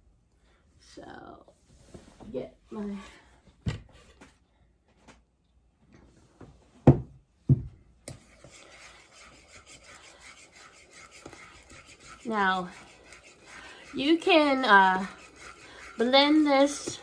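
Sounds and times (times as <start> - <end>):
spoon scraping bowl: 8.1 - 17.0.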